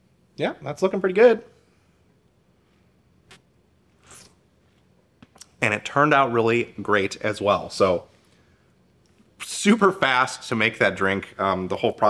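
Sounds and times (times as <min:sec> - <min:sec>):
person slurping coffee: 0:04.0 - 0:04.4.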